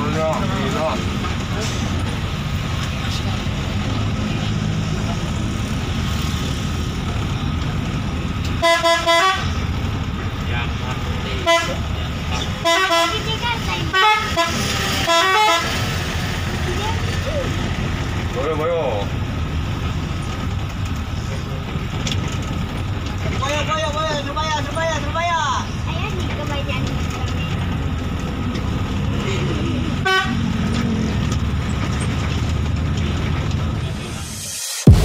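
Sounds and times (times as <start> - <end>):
bus engine and road rumble: 0.0 - 35.0.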